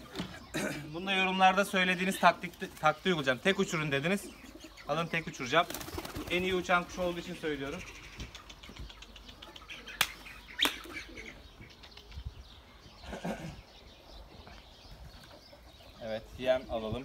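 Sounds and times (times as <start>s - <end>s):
pigeon wings flapping: 5.6s - 6.4s.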